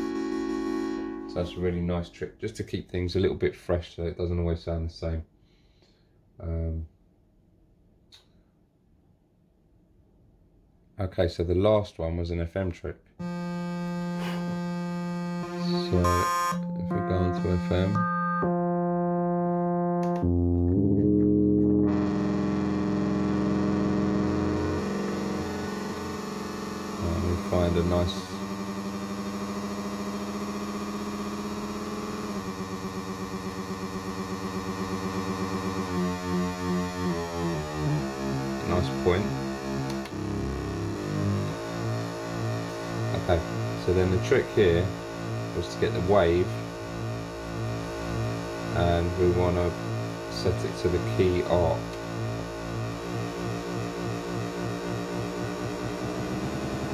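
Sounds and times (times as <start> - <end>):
synthesizer holding a bright note: 0.0 - 2.1, 13.2 - 56.9.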